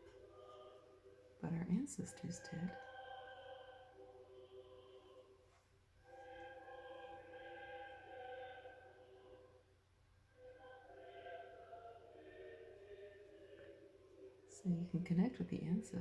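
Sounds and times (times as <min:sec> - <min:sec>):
a cappella choir singing: 0:00.0 - 0:15.0.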